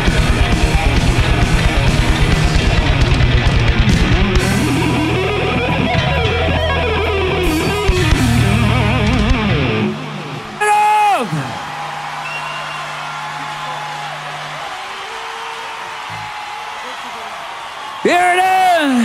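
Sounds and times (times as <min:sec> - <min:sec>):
bass and drums: 0:00.0 - 0:10.1
electric guitar lead with bends: 0:00.0 - 0:10.6.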